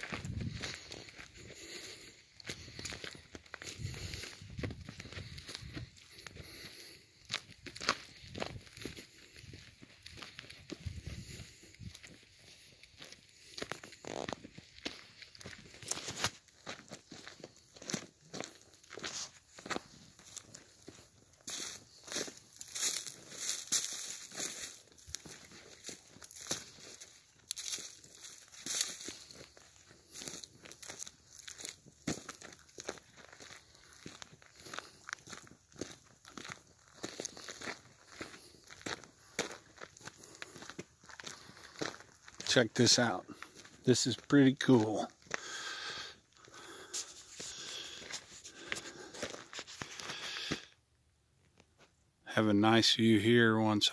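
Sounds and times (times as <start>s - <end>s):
footsteps through dry leaves: 0.0s - 50.7s.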